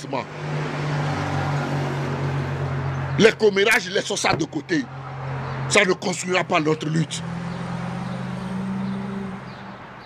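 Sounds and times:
vehicle engine hum: 0.2 - 10.0.

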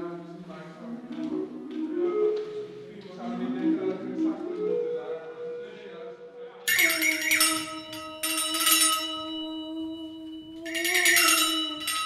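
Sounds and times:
jingle shaker shaken: 6.7 - 12.0.

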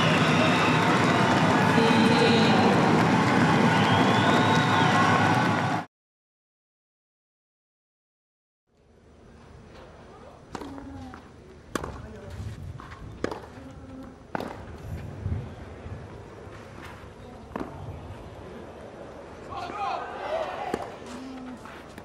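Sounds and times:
voices from the stands: 0.0 - 5.8, 17.1 - 21.8
tennis racket hitting ball: 11.7 - 12.0, 12.8 - 13.6, 14.3 - 14.7.

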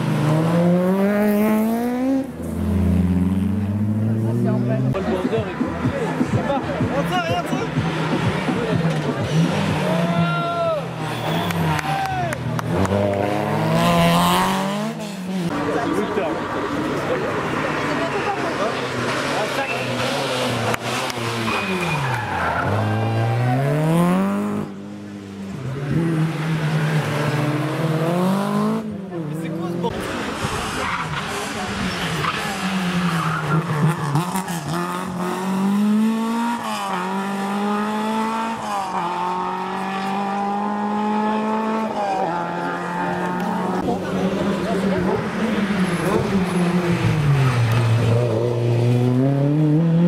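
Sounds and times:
rally car engines revving: 0.0 - 50.0.

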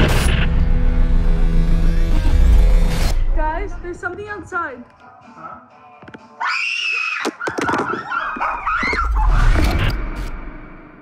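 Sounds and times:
high-pitched screaming: 6.4 - 7.4.

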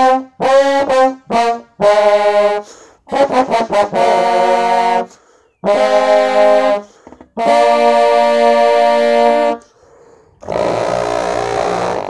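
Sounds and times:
trombones playing chords: 0.0 - 9.7, 10.4 - 12.0.

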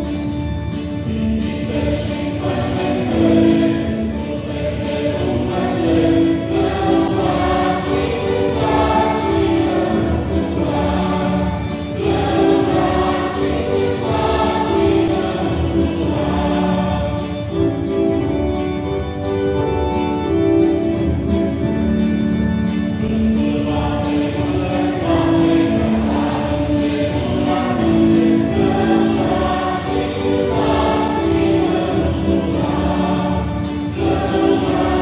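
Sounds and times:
organ accompaniment: 0.0 - 35.0
choir singing a slow hymn: 1.4 - 17.6, 23.4 - 35.0.

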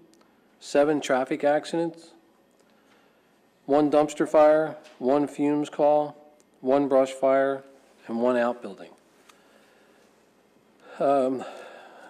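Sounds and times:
faint intake of breath: 2.6 - 3.6, 9.1 - 12.0.

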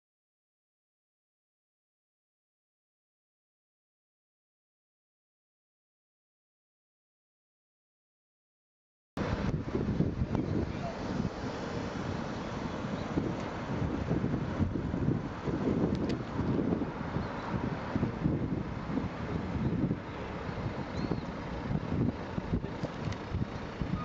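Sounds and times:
city street traffic: 9.2 - 24.0
wind buffeting microphone: 9.2 - 24.0.

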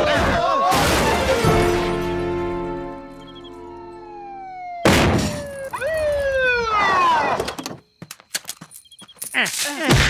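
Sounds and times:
held tone sliding downward: 3.2 - 7.4
cartoon police siren wailing: 3.2 - 7.7.

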